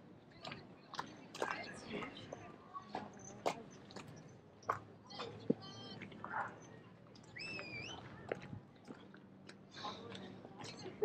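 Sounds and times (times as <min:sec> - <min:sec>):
passers-by voices: 0:00.0 - 0:11.0.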